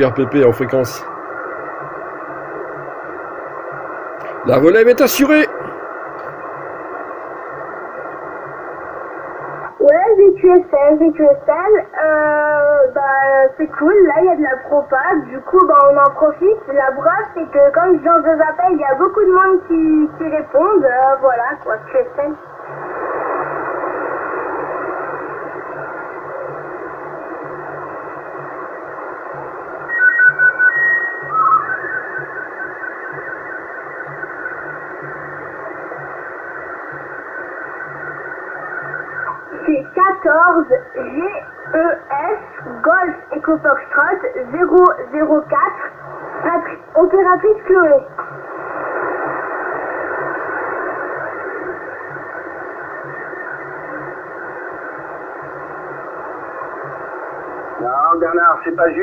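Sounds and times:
radio static hiss: 0:00.0 - 0:59.0
radio whistling tones: 0:22.6 - 0:59.0.

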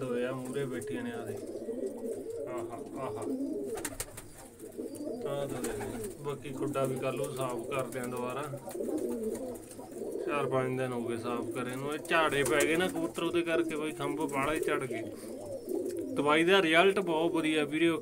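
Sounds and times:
pigeons cooing: 0:00.0 - 0:18.0.

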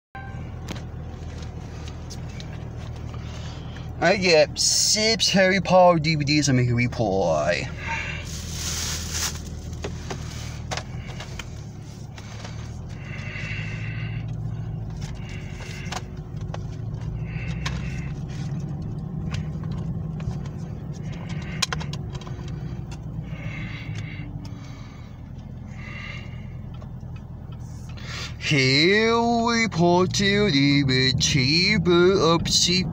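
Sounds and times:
car cabin rumble: 0:00.2 - 0:32.9.

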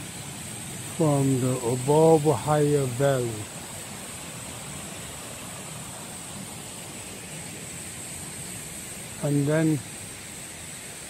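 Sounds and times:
stream flowing over rocks: 0:00.0 - 0:11.0
thin high hiss: 0:00.0 - 0:11.0.

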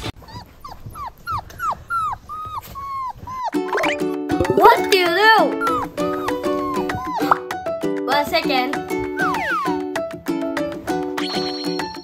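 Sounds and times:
dog whining: 0:00.0 - 0:04.7, 0:05.4 - 0:07.6, 0:09.0 - 0:09.9
music: 0:03.6 - 0:12.0.

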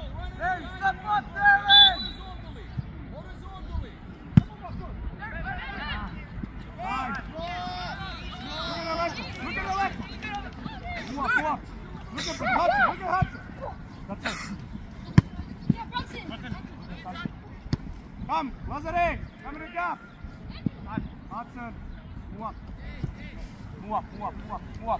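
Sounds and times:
soccer ball kicks: 0:04.3 - 0:04.6, 0:15.0 - 0:16.2, 0:17.6 - 0:18.0
voices shouting: 0:06.8 - 0:14.3.

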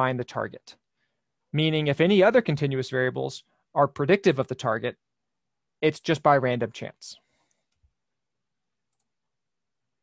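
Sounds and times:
computer mouse clicks: 0:08.9 - 0:09.2.

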